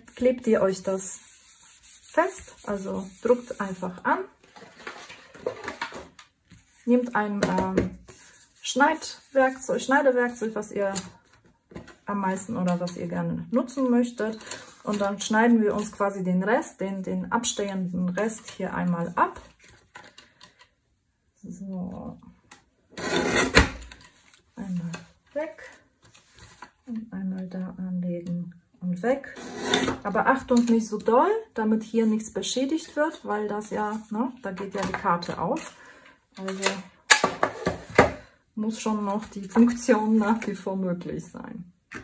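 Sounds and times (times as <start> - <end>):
paper rubbing: 0.0 - 3.9.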